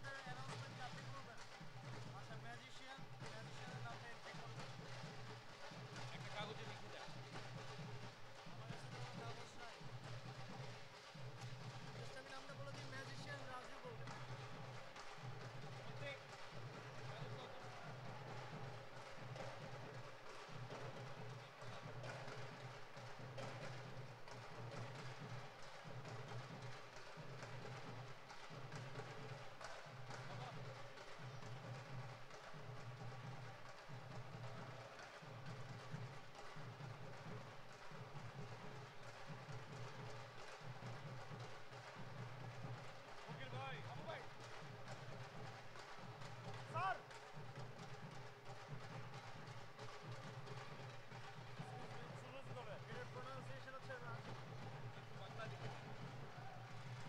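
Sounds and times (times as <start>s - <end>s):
folk drums beaten in rhythm: 0.0s - 57.0s.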